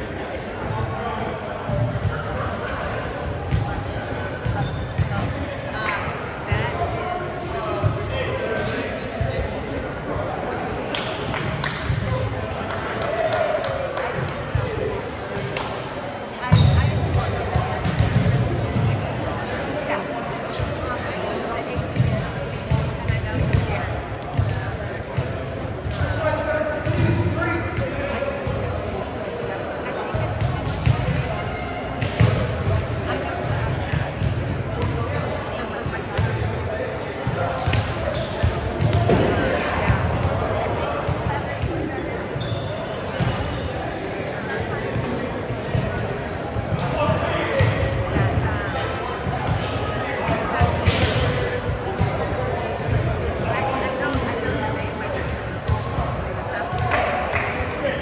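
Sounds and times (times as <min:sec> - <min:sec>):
players' voices echoing: 0:00.0 - 0:58.0
volleyball hit and bouncing: 0:49.3 - 0:51.4.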